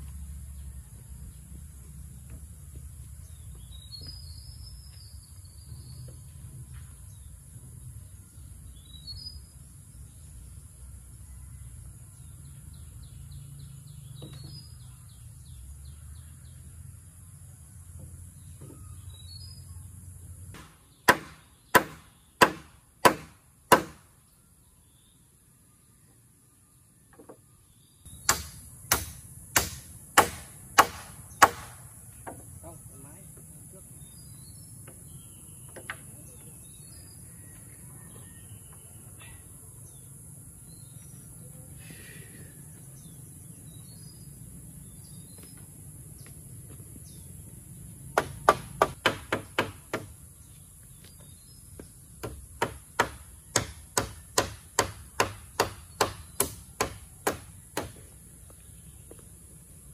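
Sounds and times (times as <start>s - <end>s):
hand tool striking wooden poles: 20.6s - 24.1s, 28.2s - 32.5s, 48.2s - 50.1s.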